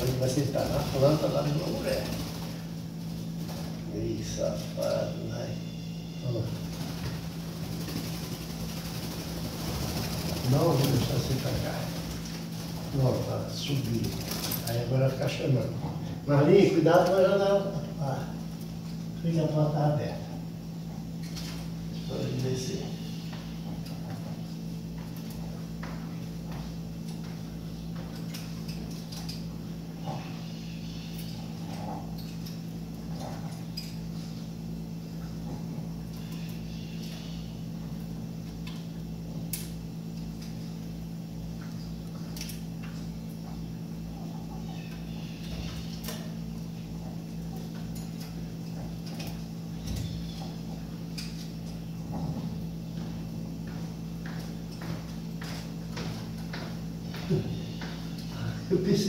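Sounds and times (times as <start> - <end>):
blackbirds calling: 0.0 - 59.0
steady low hum: 0.0 - 59.0.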